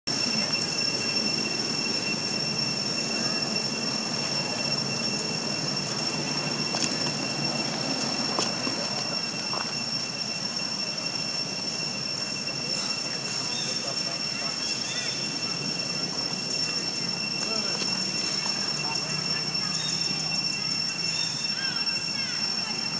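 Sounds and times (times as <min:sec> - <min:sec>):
high-pitched whine: 0:00.1 - 0:22.9.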